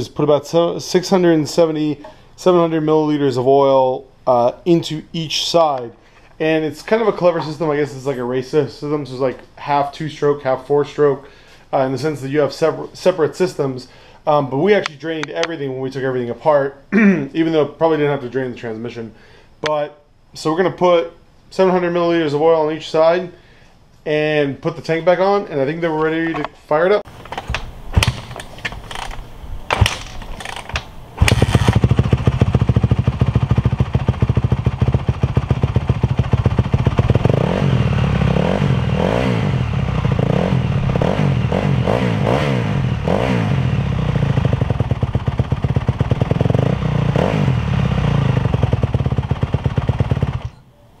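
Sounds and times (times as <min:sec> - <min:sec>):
kick-starter knocks: 0:27.2 - 0:31.8
motorcycle engine revving: 0:29.7 - 0:50.6.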